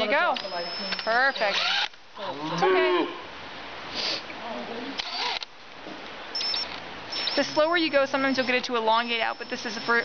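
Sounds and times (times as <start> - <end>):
high motor whine: 0.0 - 2.0, 6.4 - 10.0
cordless drill turning: 0.4 - 2.0, 5.0 - 5.5, 7.1 - 7.6, 8.4 - 10.0
short hiss: 3.9 - 4.2.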